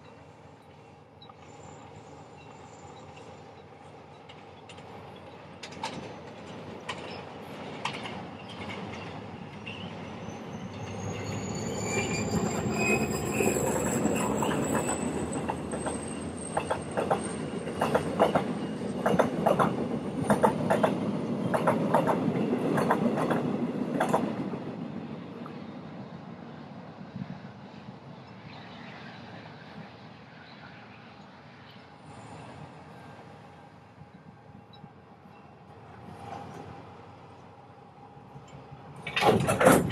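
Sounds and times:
train wheel squeal: 0.8s - 23.4s, 34.0s - 36.7s.

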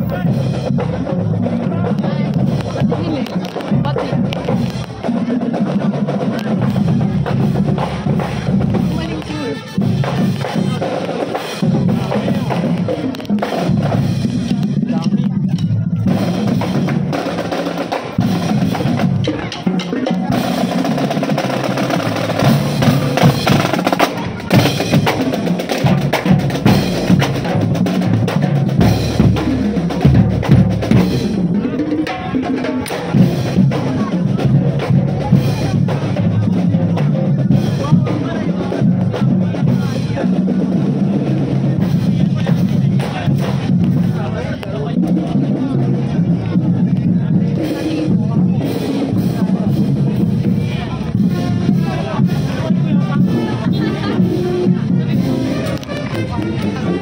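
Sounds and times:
bass drum beats: 0.0s - 57.0s
marching band playing: 0.0s - 57.0s.

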